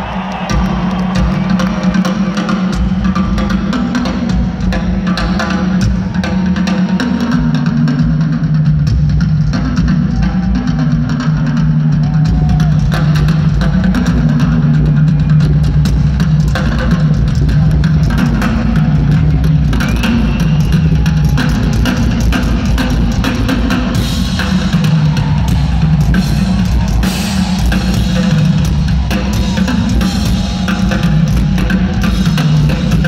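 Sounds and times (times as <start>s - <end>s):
drum kit solo: 0.0s - 33.0s.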